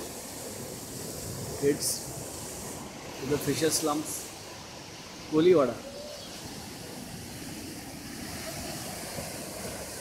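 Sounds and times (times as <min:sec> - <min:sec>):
sea surf breaking: 0:00.0 - 0:10.0
wind: 0:00.0 - 0:10.0.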